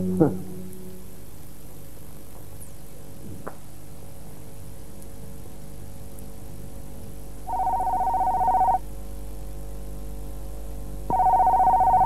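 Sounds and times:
faint music bed: 0:00.0 - 0:01.8
telephone ringing: 0:07.5 - 0:08.8, 0:11.1 - 0:12.0.

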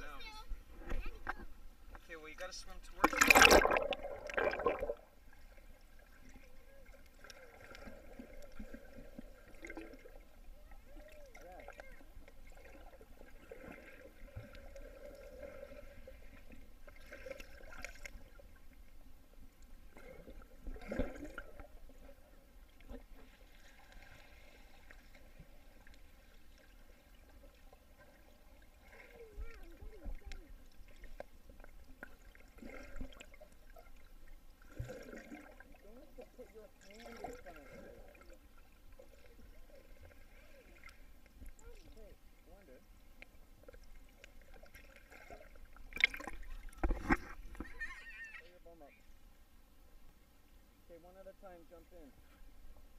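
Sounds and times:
muffled underwater water movement: 0:00.0 - 0:52.9
bursts of water noise: 0:02.3 - 0:18.5.

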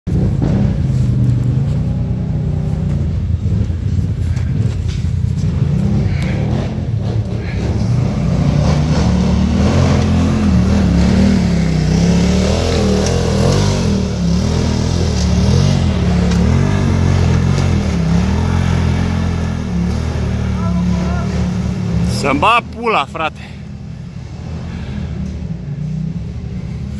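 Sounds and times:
engine revving up and down: 0:00.1 - 0:26.9.

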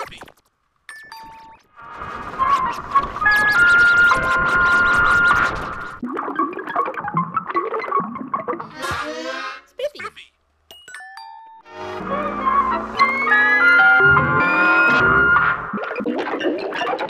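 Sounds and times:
voice: 0:00.0 - 0:00.3, 0:09.7 - 0:10.4
chiming tones: 0:00.9 - 0:01.7, 0:10.7 - 0:14.8
synthesizer music: 0:01.4 - 0:09.8, 0:11.6 - 0:17.0
cartoon sound effects: 0:08.6 - 0:10.3, 0:11.7 - 0:15.5
pitch sweep: 0:11.7 - 0:16.0.

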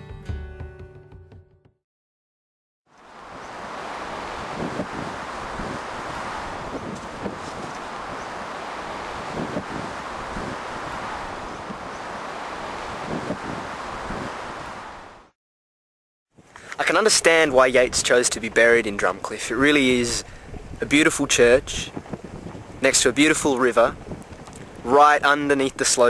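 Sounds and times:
wind gusts on microphone: 0:03.0 - 0:15.3, 0:16.4 - 0:26.0
wind rushing: 0:03.0 - 0:15.3, 0:20.0 - 0:22.9.

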